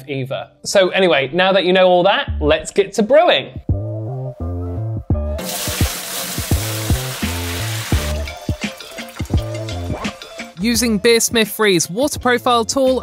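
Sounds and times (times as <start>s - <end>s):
background music with bass line: 2.2s - 2.8s, 3.4s - 13.0s
tap water running into kettle: 5.4s - 10.4s.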